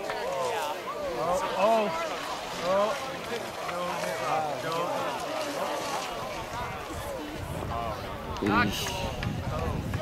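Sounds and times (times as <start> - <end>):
overlapping chatter: 0.0 - 10.0.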